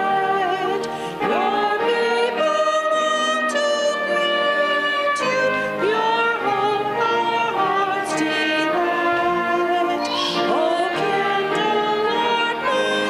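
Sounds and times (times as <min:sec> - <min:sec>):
woman singing a hymn: 0:00.0 - 0:13.0.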